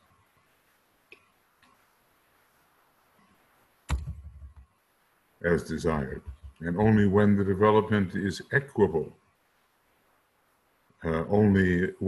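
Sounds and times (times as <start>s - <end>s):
sharp click: 3.9s - 4.6s.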